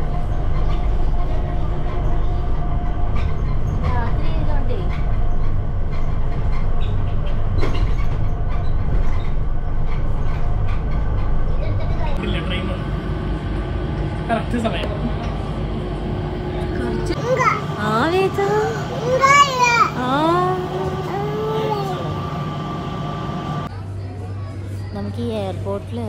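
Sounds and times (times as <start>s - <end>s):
train carriage rumbling: 0.0s - 23.8s.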